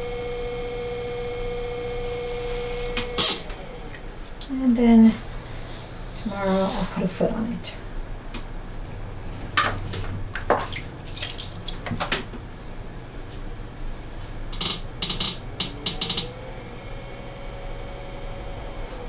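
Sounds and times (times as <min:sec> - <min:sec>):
water splashing and dripping: 0:10.4 - 0:11.9.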